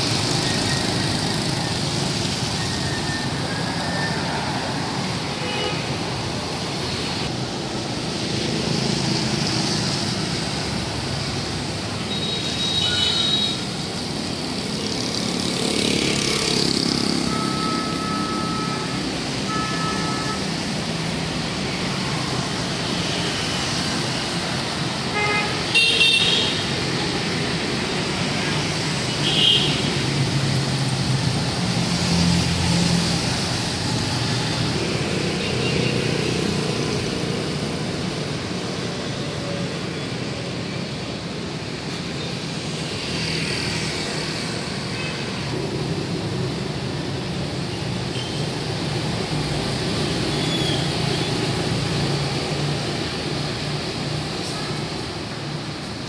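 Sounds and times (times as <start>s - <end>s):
motorbikes and cars passing: 0.0s - 56.0s
tyres on wet road: 0.0s - 56.0s.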